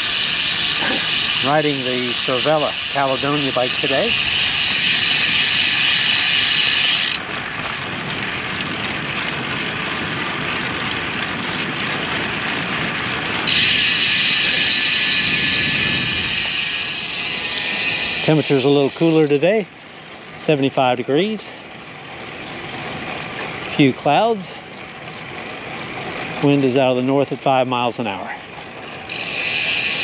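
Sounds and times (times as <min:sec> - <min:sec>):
wind noise: 0:07.4 - 0:17.8.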